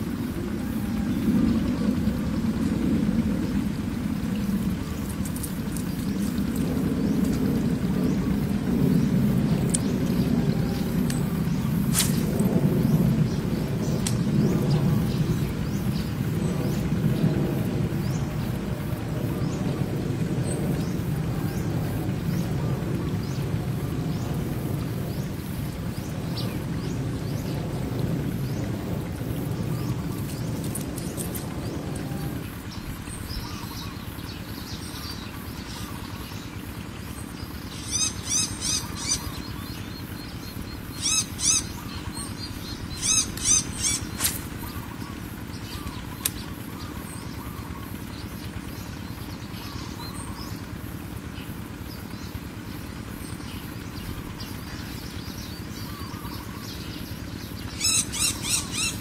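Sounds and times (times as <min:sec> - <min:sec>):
low rumbling noise: 0:00.0 - 0:59.0
bird chirping: 0:37.6 - 0:50.6, 0:53.2 - 0:59.0.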